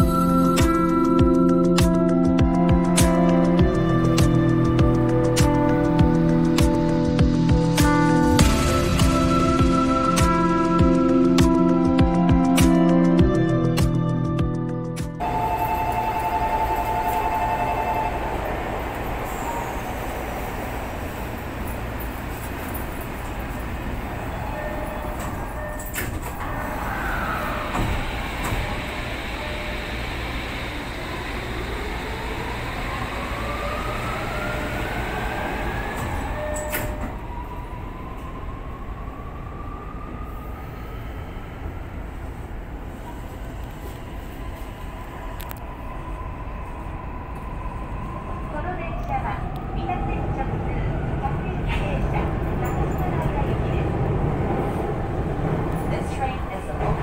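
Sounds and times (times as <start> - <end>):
train wheels rumbling on rail: 15.2 - 38.8, 39.8 - 57.0
traction motors whining: 24.0 - 37.5.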